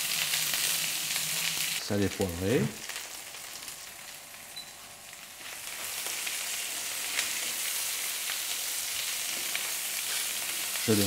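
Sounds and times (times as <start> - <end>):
leaves sizzling in a frying pan: 0.0 - 11.0.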